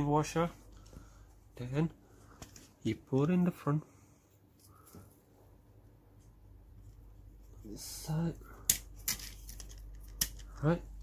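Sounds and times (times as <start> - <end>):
small plastic parts clicking: 8.6 - 10.7.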